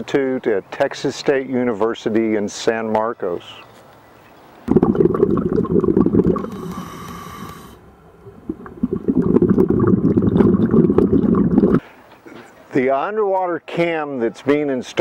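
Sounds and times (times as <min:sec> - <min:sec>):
regulator exhaust bubbles gurgling: 0:04.7 - 0:07.5, 0:08.2 - 0:11.8
regulator breath hiss: 0:06.5 - 0:07.8.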